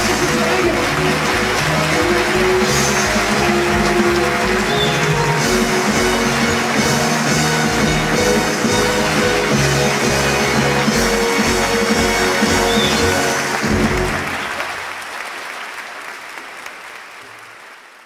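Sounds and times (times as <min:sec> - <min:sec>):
orchestra playing: 0:00.0 - 0:14.6
audience applause: 0:00.0 - 0:18.0.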